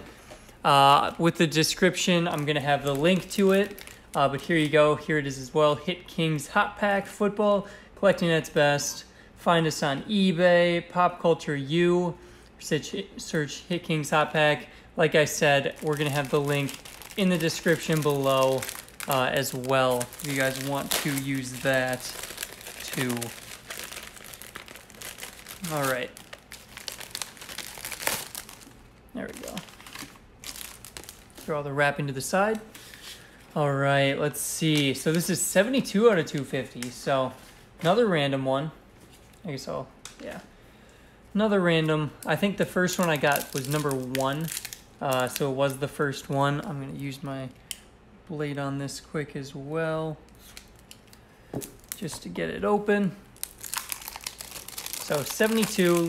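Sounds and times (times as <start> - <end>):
plastic packaging crinkling: 1.7 - 4.8, 15.2 - 33.4, 42.8 - 45.5, 50.3 - 52.2, 53.3 - 56.0.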